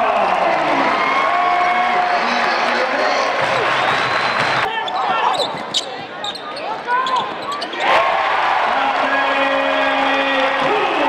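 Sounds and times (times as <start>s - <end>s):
crowd noise: 0.0s - 11.0s
sneakers squeaking on hardwood: 4.3s - 7.9s.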